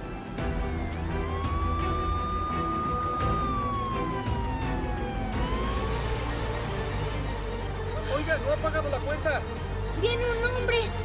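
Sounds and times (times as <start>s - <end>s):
siren wailing: 0.0s - 7.8s
background music: 0.0s - 11.0s.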